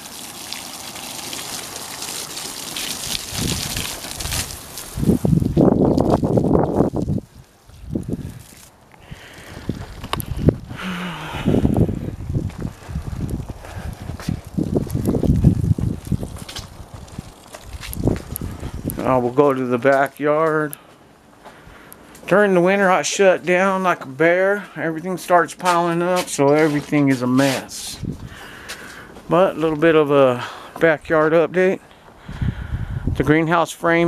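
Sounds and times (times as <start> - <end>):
hose water splashing: 0.0 - 20.7, 25.1 - 31.7
wind buffeting microphone: 3.1 - 19.5, 27.9 - 28.5, 32.2 - 33.4.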